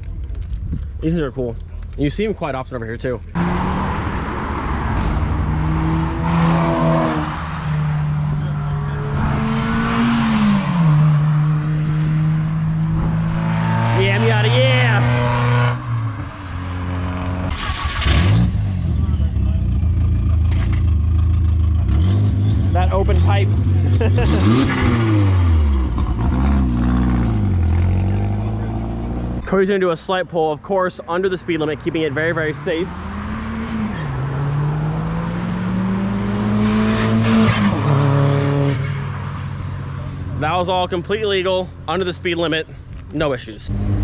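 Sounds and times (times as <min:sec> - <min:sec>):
cars accelerating past: 0:03.4 - 0:19.3, 0:20.0 - 0:29.5, 0:31.3 - 0:40.4.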